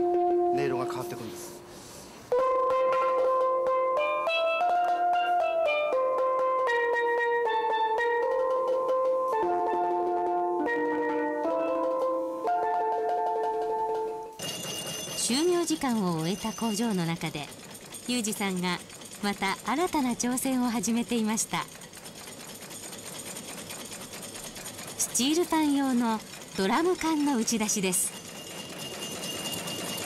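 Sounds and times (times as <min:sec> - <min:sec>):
steelpan melody: 0:00.0 - 0:21.0, 0:25.0 - 0:30.0
voices: 0:18.1 - 0:21.6.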